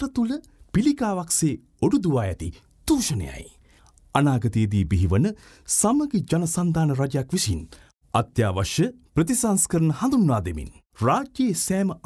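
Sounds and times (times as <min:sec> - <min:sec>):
narrator reading aloud: 0:00.0 - 0:12.0.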